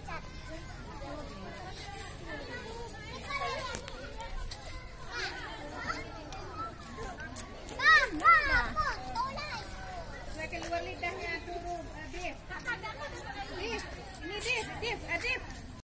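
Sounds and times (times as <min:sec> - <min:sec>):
children playing and chattering: 0:00.0 - 0:15.8.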